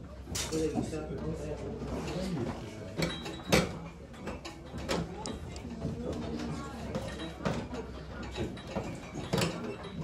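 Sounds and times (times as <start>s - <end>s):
clicks and rattles on wire racks: 6.9s - 10.0s.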